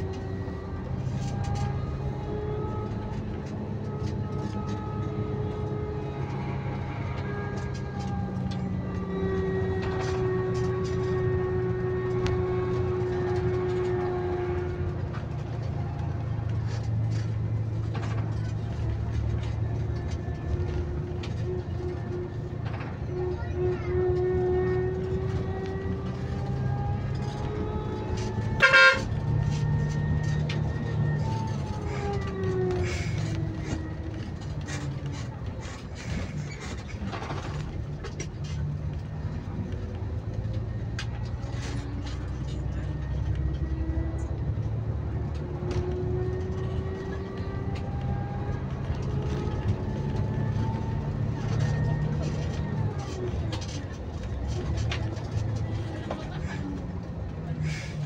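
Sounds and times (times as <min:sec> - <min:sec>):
bus engine running with whine: 0:00.0 - 0:58.0
loud horn blast: 0:03.9 - 0:15.2, 0:23.0 - 0:30.3.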